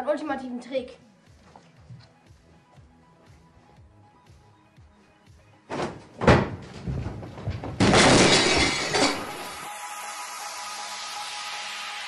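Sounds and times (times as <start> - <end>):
music: 0.0 - 12.0
loud crash: 7.8 - 9.7.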